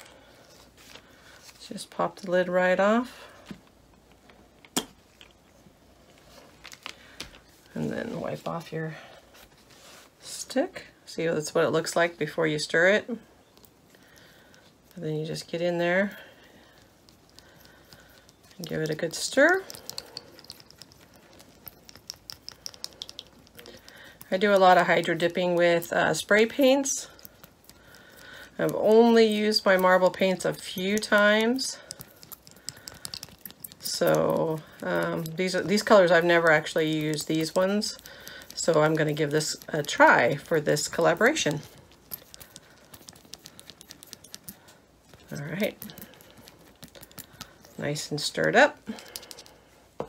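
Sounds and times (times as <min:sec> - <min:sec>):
stir stick clicking in jar: 0:16.8 - 0:25.3, 0:27.2 - 0:47.8.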